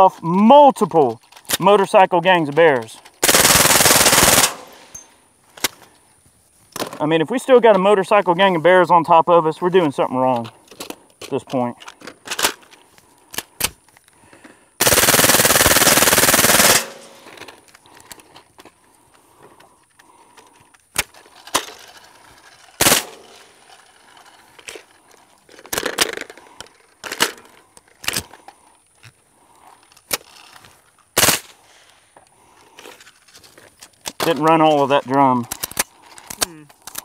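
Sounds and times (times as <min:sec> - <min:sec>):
suppressed automatic gunfire burst: 0:03.2 - 0:04.9, 0:14.8 - 0:17.3, 0:22.8 - 0:23.2
single sharp gunshots: 0:22.8 - 0:23.2, 0:31.2 - 0:31.5.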